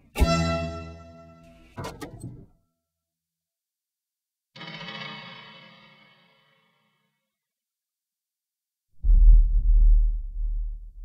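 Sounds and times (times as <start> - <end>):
deep boom: 9.0 - 11.0.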